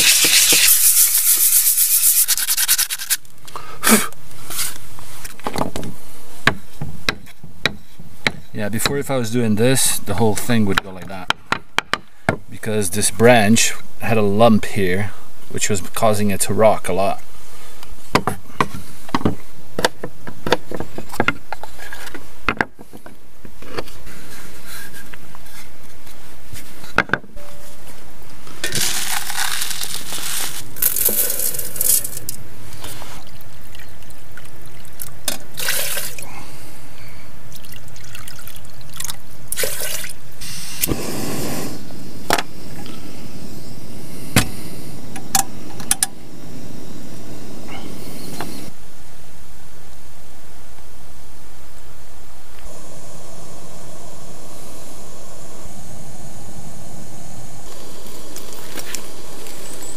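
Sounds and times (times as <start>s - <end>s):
liquid pouring into metal pot: 37.5s - 40.1s.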